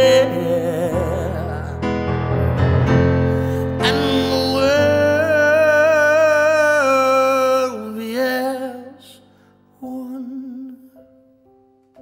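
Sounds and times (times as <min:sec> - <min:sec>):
electric keyboard chords: 0:00.0 - 0:07.4.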